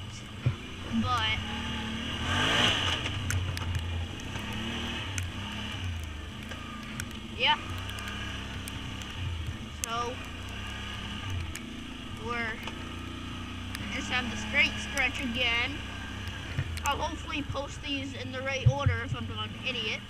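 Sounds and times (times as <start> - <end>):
atv engine running: 0.0 - 20.0.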